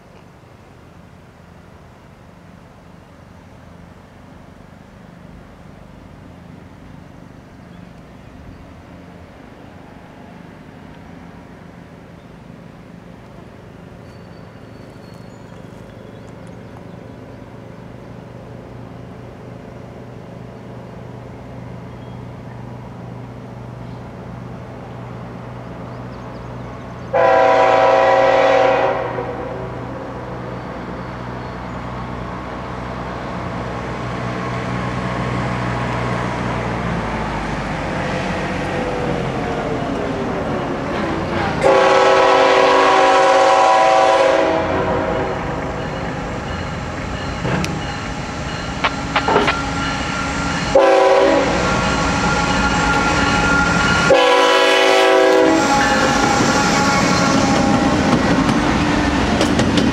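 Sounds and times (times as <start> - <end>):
locomotive rumble: 0.0 - 59.9
train horn blasts: 27.1 - 30.4, 41.6 - 46.1, 48.8 - 58.1.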